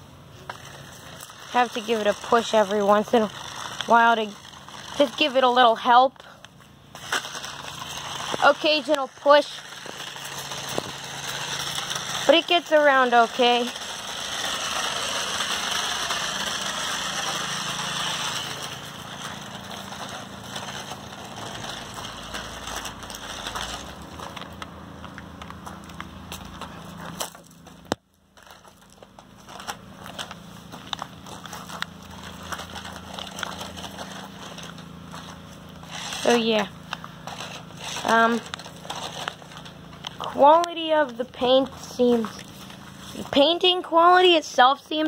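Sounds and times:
toy truck electric motor whirring: 0:00.4 - 0:45.0
crunching of grass and dry leaves: 0:13.4 - 0:40.4.

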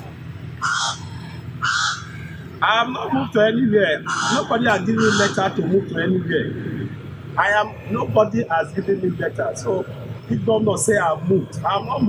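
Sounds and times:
bird harsh calls: 0:00.0 - 0:02.6, 0:03.9 - 0:05.7.

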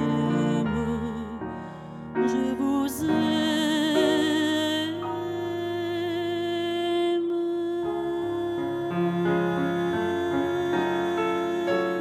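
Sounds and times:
soft piano: 0:00.0 - 0:12.0.

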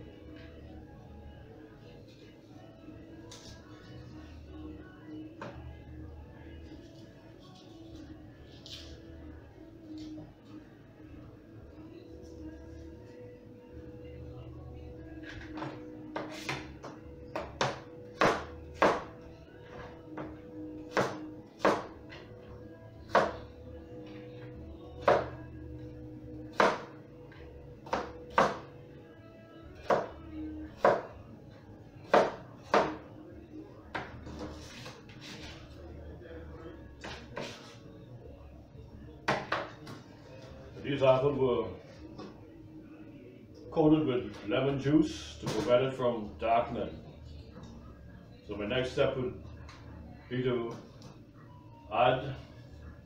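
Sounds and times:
knife chopping on cutting board: 0:17.4 - 0:19.1, 0:23.1 - 0:23.4, 0:26.5 - 0:26.9, 0:27.8 - 0:28.6, 0:32.1 - 0:33.0.

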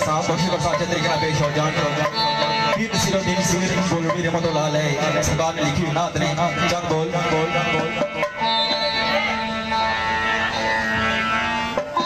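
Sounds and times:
keyed banjo melody: 0:00.0 - 0:12.0.

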